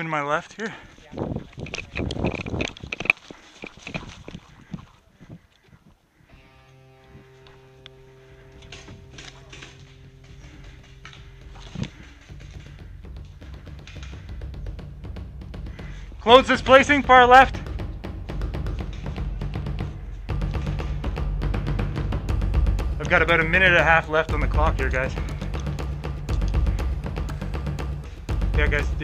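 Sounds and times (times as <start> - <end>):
sharp clicks and knocks: 1.6 - 4.4, 8.7 - 14.8, 25.4 - 27.2
background music held chord: 6.3 - 29.0
low rumble: 7.2 - 29.0.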